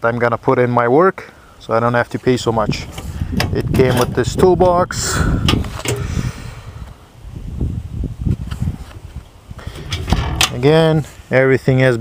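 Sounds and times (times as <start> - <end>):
wind on microphone: 2.4 - 11.0.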